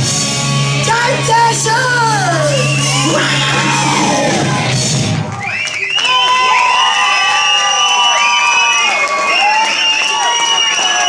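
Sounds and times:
audience cheering and shouting: 0.6s - 11.0s.

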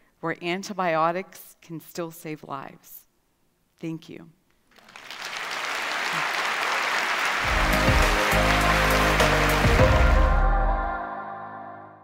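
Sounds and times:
audience applause: 4.8s - 9.8s.

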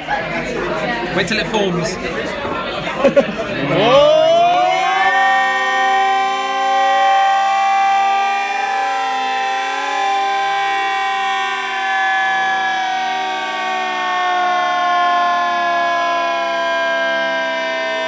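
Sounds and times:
slowed pub noise eerie chord: 2.7s - 18.0s.

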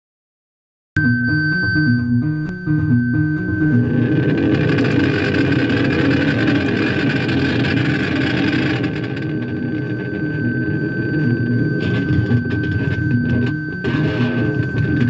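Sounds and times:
high whistling tone: 1.0s - 15.0s
low bass notes: 1.0s - 15.0s
noisy band wash: 2.0s - 15.0s.

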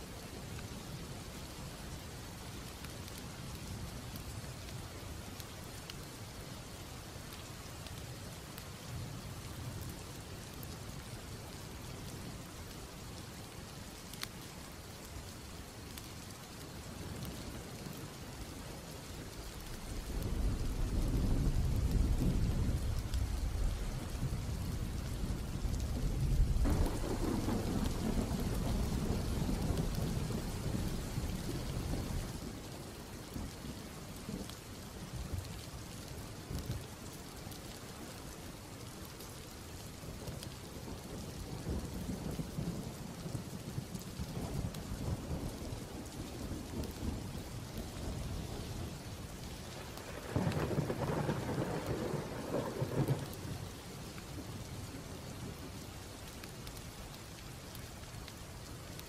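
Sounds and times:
steady rain: 0.0s - 59.0s
rolling thunder: 19.9s - 32.4s, 50.0s - 53.5s.

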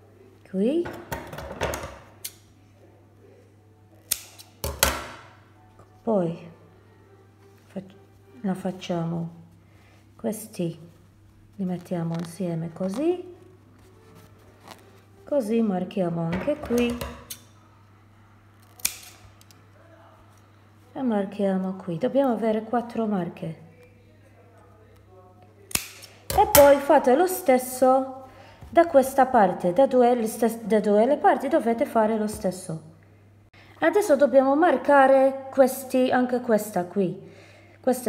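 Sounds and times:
scissors snipping fabric: 4.0s - 5.0s, 18.6s - 19.5s, 25.7s - 26.8s.

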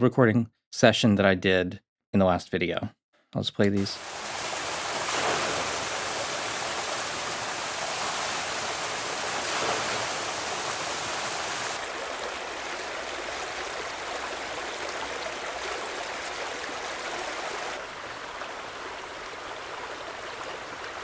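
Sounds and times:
stream water rushing: 4.0s - 21.0s.

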